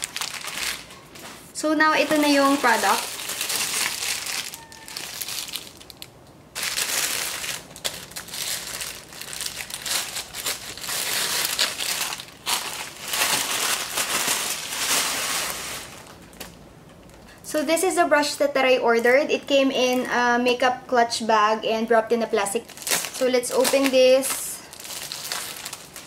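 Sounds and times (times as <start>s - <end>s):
plastic packaging crinkling: 0.0s - 16.6s, 22.6s - 26.0s.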